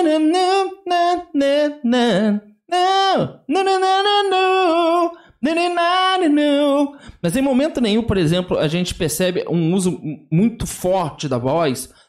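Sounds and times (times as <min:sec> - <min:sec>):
man singing with vibrato: 0:00.0 - 0:08.4.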